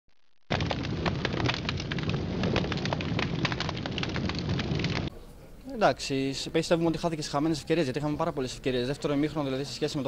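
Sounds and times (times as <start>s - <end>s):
dense crackling noise: 0.1s - 8.2s
low rumble: 0.5s - 5.1s.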